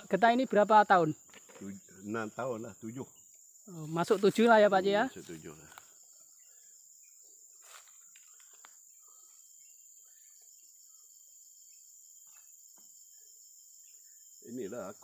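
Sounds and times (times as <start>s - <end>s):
insect chorus: 0.0s - 15.0s.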